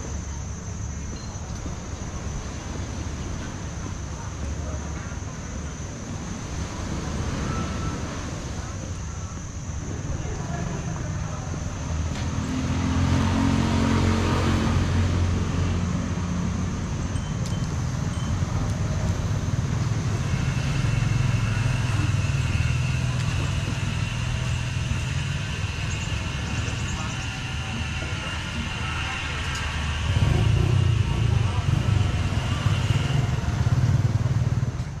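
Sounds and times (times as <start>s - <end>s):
street traffic: 0.0s - 35.0s
motorbike engine: 12.1s - 35.0s.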